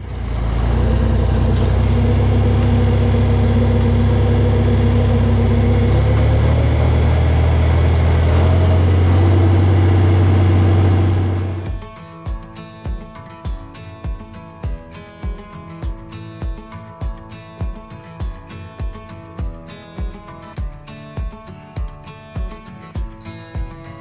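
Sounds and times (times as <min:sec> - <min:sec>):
tractor engine running: 0:00.0 - 0:20.7
acoustic guitar music: 0:00.0 - 0:24.0.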